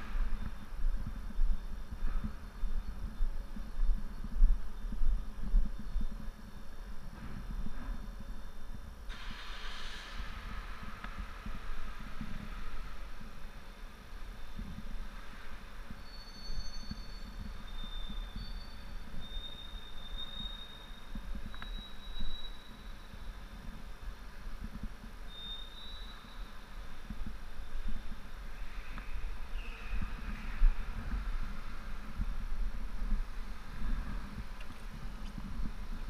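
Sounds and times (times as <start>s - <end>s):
faint high squeaks: 16.0s - 23.2s, 25.3s - 26.8s.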